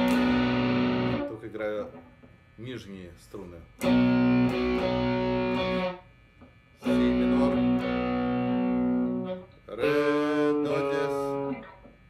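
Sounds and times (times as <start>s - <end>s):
electric guitar strumming chords: 0.0s - 1.6s, 3.8s - 6.1s, 6.8s - 12.0s.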